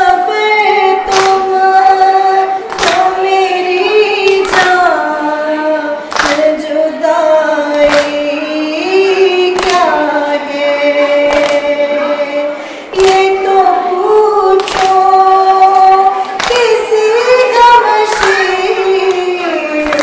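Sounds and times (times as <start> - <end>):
woman chanting a lament: 0.0 - 20.0.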